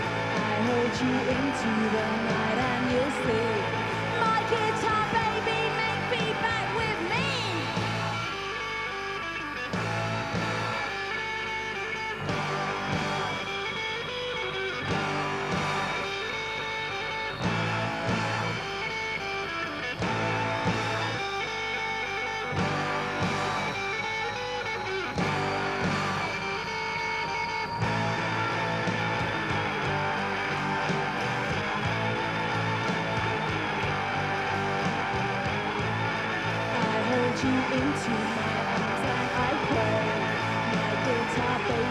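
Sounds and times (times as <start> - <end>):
rock band instrumental: 0.0 - 41.9.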